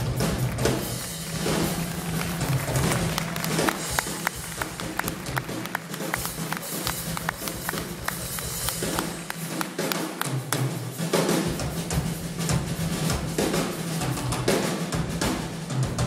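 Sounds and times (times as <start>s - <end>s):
live band music: 0.0s - 16.0s.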